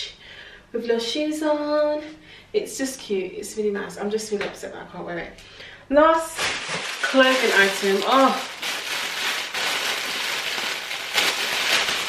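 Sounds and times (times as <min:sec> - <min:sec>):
plastic bag crinkling: 0:06.2 - 0:12.0.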